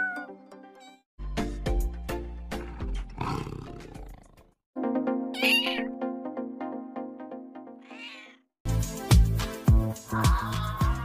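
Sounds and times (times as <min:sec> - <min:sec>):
big cat roaring: 0:02.5 - 0:04.5
background music with percussion: 0:08.7 - 0:11.0.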